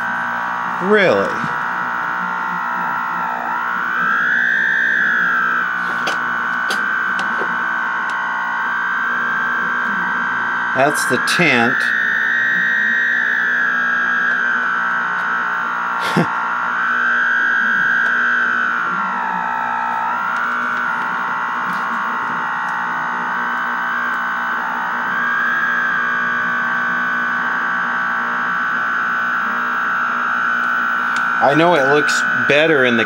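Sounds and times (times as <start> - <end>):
distorted electronic tone: 0.0 - 33.0.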